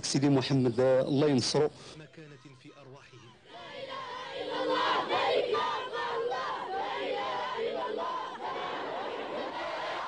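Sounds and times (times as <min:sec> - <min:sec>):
crowd shouting: 0:03.2 - 0:10.0.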